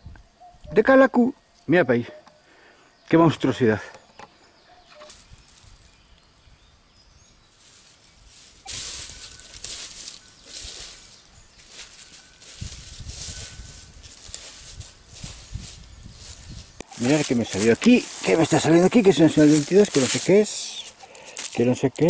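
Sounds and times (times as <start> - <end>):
footsteps crunching dry leaves: 7.4 - 21.8.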